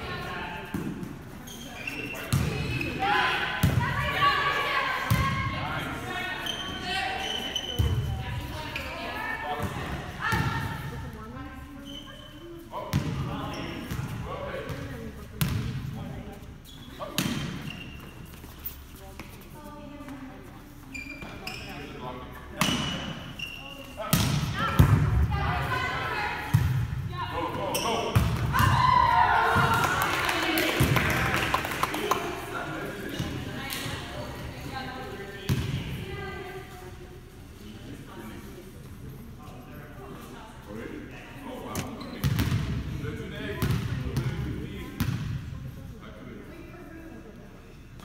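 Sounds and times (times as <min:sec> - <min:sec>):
players' voices: 0:00.0 - 0:47.8
players' voices echoing: 0:24.0 - 0:38.4
volleyball slaps: 0:29.4 - 0:32.3.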